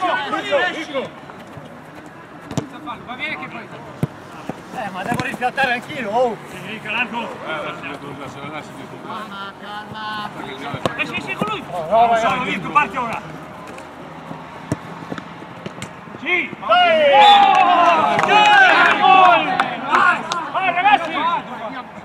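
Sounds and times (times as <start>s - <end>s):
footballers shouting: 0.0s - 22.0s
men yelling in celebration: 16.2s - 21.5s.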